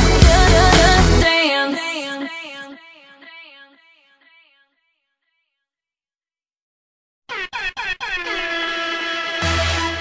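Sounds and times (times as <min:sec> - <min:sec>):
hip-hop track: 0:07.3 - 0:10.0.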